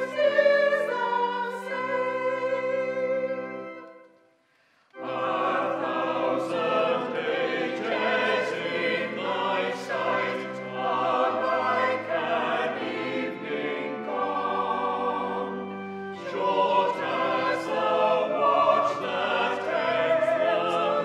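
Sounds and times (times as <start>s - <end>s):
church choir singing: 0.0s - 4.1s, 4.9s - 21.0s.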